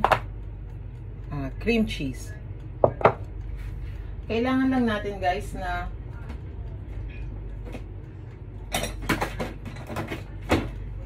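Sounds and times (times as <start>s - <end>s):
steady low hum: 0.0s - 11.0s
items clattering on a shelf: 8.7s - 10.8s.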